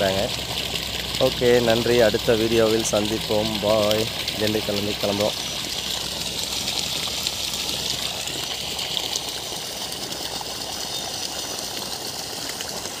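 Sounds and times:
water gushing from pipe: 0.0s - 13.0s
water splashing onto wet soil: 0.0s - 13.0s.

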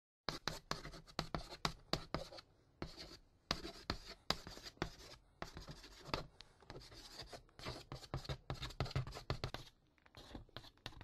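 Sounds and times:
pen scratching on paper: 0.3s - 11.0s.

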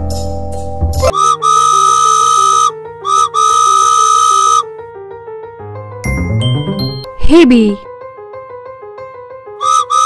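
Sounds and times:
background music: 0.0s - 10.0s
steam train whistle: 1.0s - 4.7s, 9.6s - 10.0s.

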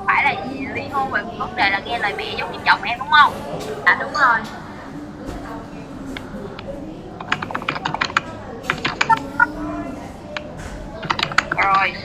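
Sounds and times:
computer keyboard typing: 7.2s - 9.5s, 10.3s - 12.0s.

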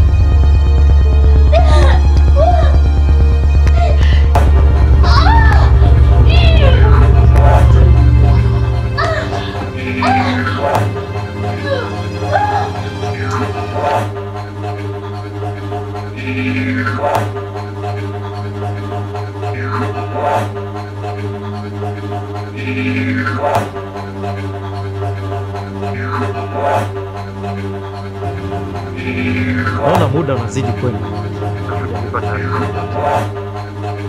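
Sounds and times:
dramatic music with bass drone: 0.0s - 34.0s.

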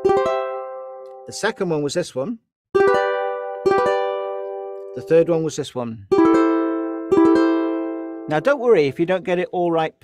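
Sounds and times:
ukulele chord strummed: 0.0s - 1.4s, 2.8s - 9.2s.

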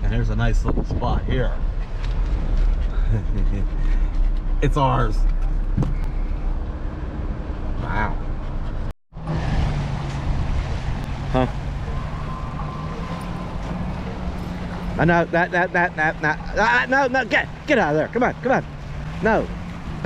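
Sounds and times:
wind: 0.0s - 20.0s.

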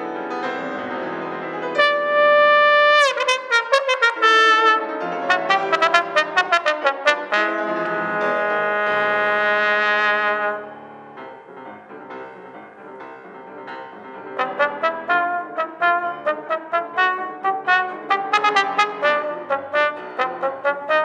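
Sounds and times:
piano accompaniment: 0.0s - 21.0s
trombone playing: 1.7s - 10.8s, 14.4s - 21.0s.

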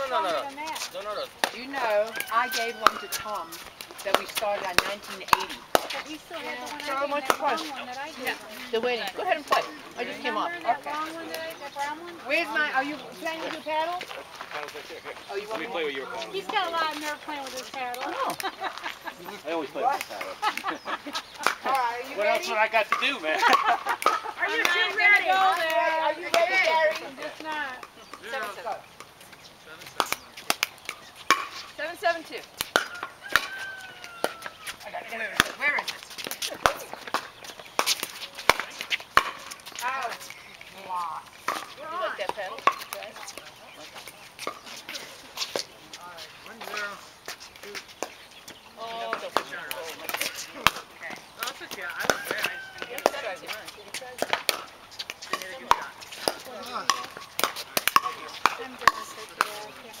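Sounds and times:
voices chattering: 0.0s - 60.0s.

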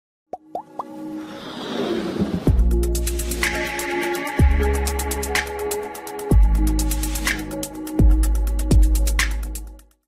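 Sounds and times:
electronic music: 2.5s - 9.8s.

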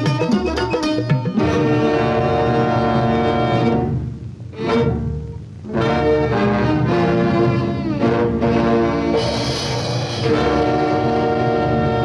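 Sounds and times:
orchestral brass chords: 0.0s - 12.0s.

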